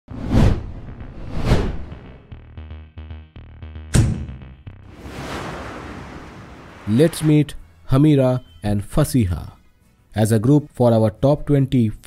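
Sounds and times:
whoosh sound effects: 4.9s - 7.6s.

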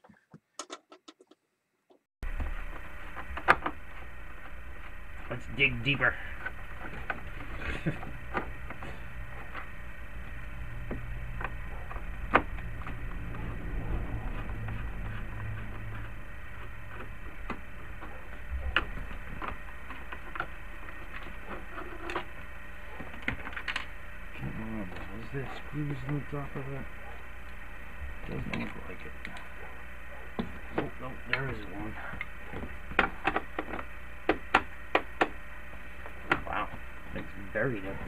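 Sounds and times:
steady low hum: 2.2s - 38.0s.

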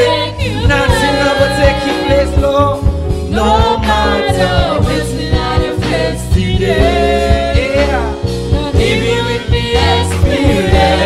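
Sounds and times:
man singing into microphone: 0.0s - 4.6s
regular drum beat: 0.0s - 11.0s
steady bass line: 0.0s - 11.0s.

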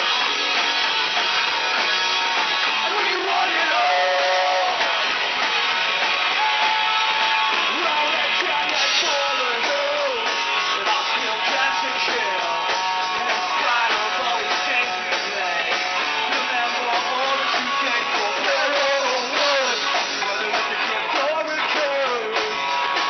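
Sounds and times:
rock band playing live: 0.0s - 23.0s
person singing: 2.8s - 5.1s, 6.3s - 23.0s.

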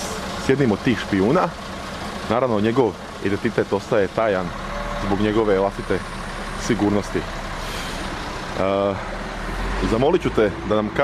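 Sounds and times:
road traffic noise: 0.0s - 11.0s
vehicle engine running: 0.0s - 11.0s.

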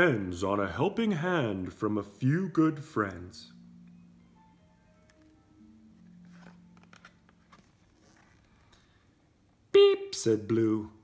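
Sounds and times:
cardboard page turning: 6.0s - 9.0s.

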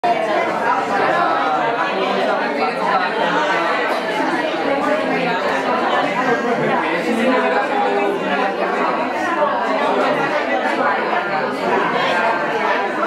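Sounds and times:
overlapping conversations: 0.0s - 13.0s.

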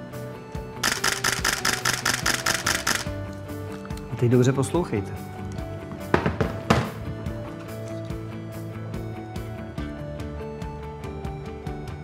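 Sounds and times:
background music: 0.0s - 12.0s
camera shutter burst clicks: 0.8s - 3.2s.

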